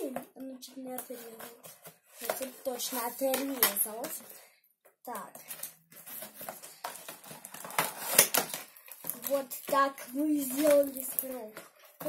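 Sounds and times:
toy packaging rustling and scraping: 0:00.1 - 0:12.0
packaging crackle: 0:05.4 - 0:12.0.

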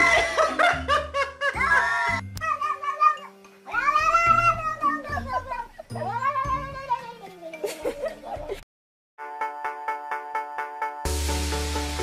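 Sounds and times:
background music: 0:00.0 - 0:08.6, 0:09.2 - 0:12.0.

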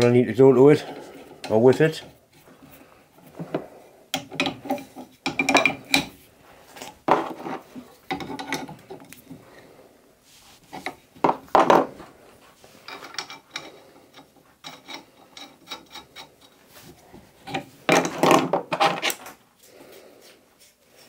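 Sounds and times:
metal scraping and clinking: 0:07.1 - 0:09.2, 0:12.7 - 0:16.6.

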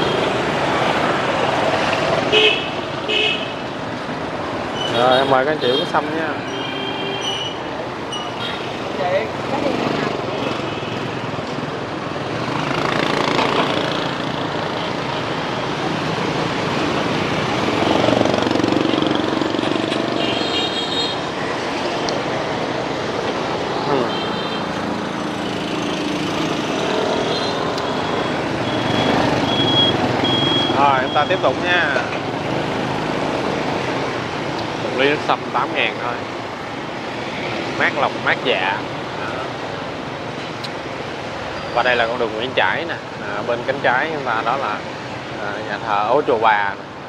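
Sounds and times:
motorbike engines passing: 0:00.0 - 0:47.0
people talking: 0:23.9 - 0:24.2.

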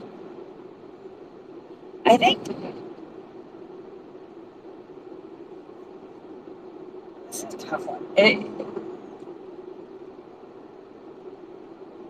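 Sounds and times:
faint continuous hum: 0:00.0 - 0:12.0.

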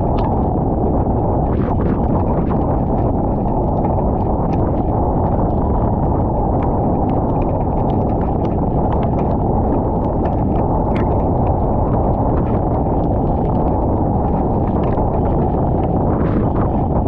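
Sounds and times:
raindrops ticking on camera: 0:00.0 - 0:17.0
wind buffeting microphone: 0:00.0 - 0:17.0.

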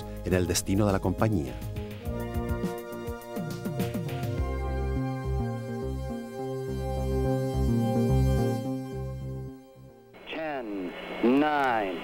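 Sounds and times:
man speaking over radio: 0:10.2 - 0:12.0.

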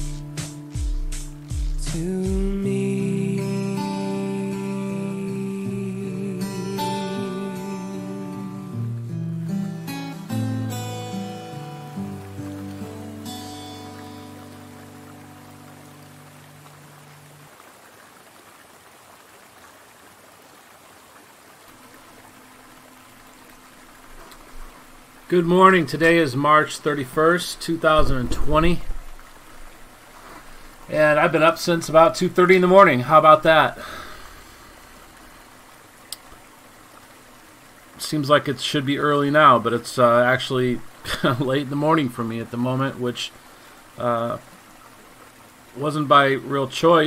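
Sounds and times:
song notes ringing out: 0:00.0 - 0:17.0
mountain stream rushing: 0:00.0 - 0:47.0.

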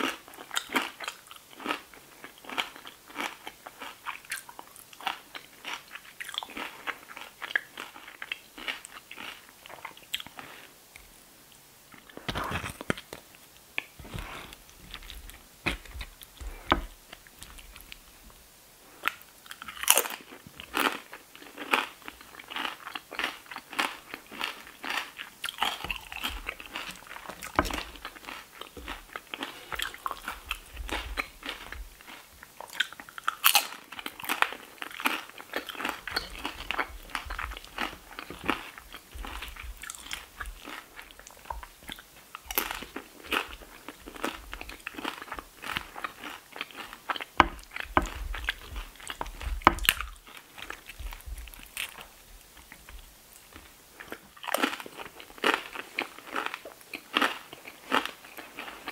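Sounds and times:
chewing crunchy chips: 0:00.0 - 0:10.7, 0:11.9 - 0:18.2, 0:18.8 - 0:58.9.

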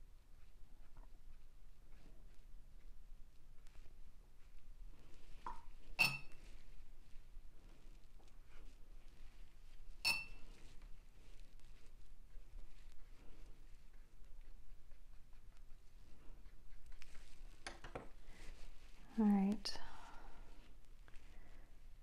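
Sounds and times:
ringing glass chink: 0:06.0 - 0:06.3, 0:10.0 - 0:10.4.

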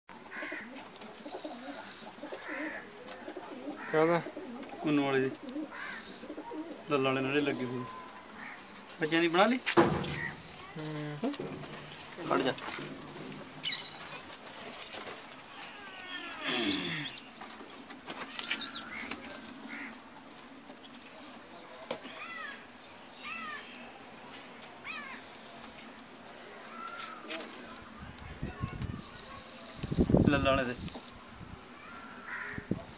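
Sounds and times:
wing flapping and rustling: 0:00.2 - 0:16.5, 0:17.1 - 0:32.9
pigeons cooing: 0:00.2 - 0:24.2
pigeon squabs squeaking: 0:09.2 - 0:10.7, 0:13.3 - 0:14.2.

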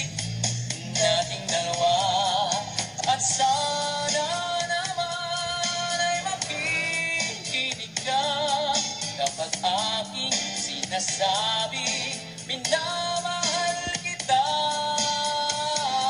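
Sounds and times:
backing track: 0:00.0 - 0:16.0
man singing a love ballad: 0:00.8 - 0:16.0.

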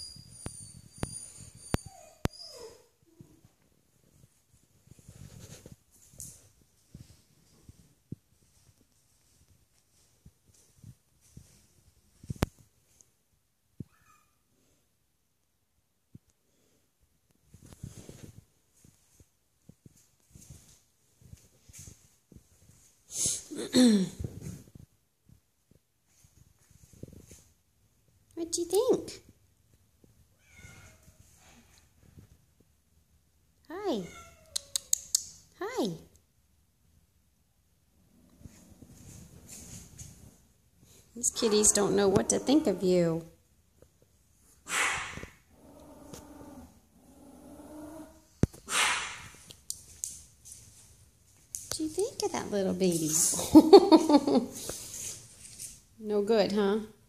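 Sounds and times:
puppy whimpering: 0:00.0 - 0:03.2.

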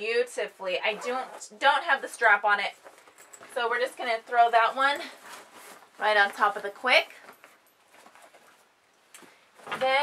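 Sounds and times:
fabric bags rustling: 0:00.6 - 0:10.0.

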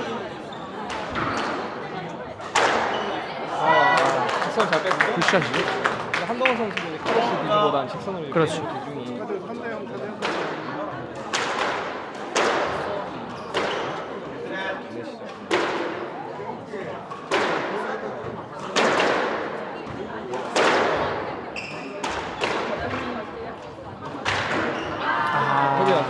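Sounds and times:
short squeak: 0:21.6 - 0:22.0.

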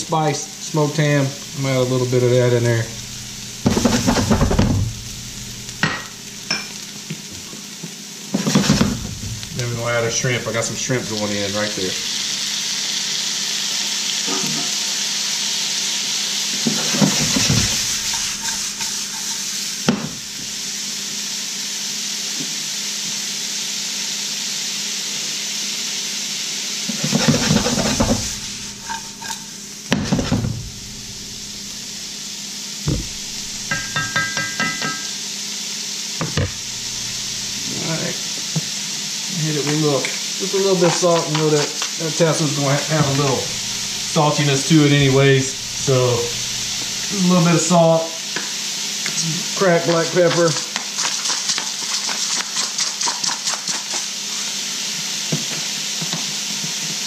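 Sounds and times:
food sizzling in a skillet: 0:00.0 - 0:57.0
food rattling in a shaken pan: 0:50.3 - 0:54.3.

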